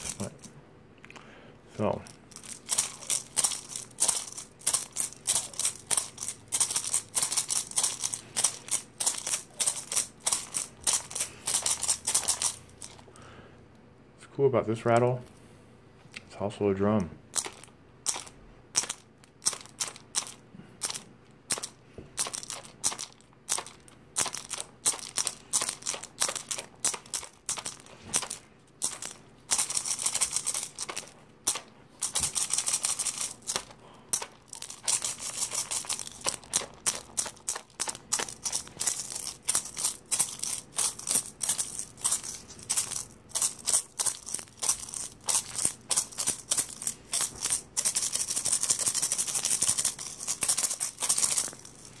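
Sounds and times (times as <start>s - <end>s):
shell rattle shaking: 0.0s - 0.5s, 1.9s - 13.1s, 17.3s - 52.0s.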